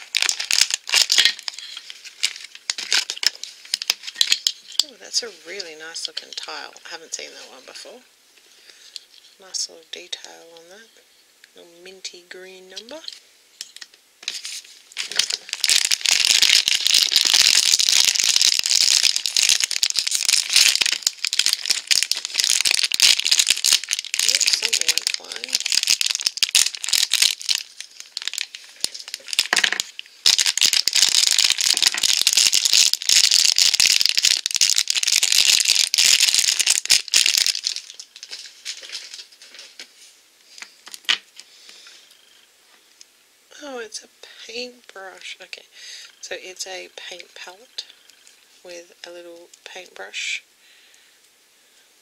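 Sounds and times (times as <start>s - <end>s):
plastic packaging crinkling: 0.0s - 7.7s, 12.8s - 41.5s.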